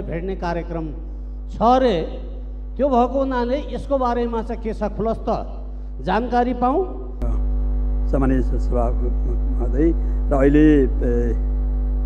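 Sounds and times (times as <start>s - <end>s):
low mains hum: 0.0s - 12.0s.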